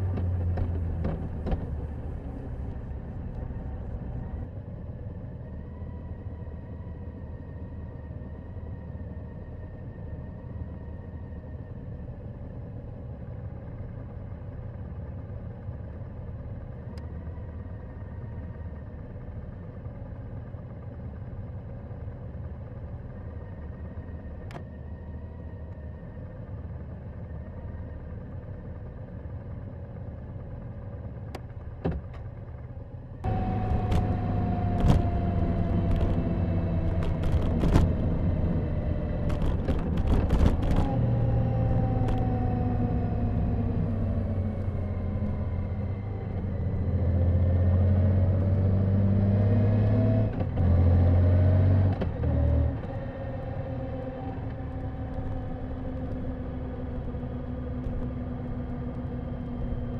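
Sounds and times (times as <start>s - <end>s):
motorcycle engine at road speed: 0.0s - 59.9s
wind and road noise: 0.0s - 59.9s.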